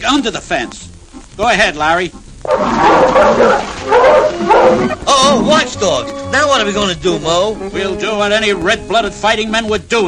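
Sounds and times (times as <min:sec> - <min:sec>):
dogs barking: 0:02.4 - 0:05.6.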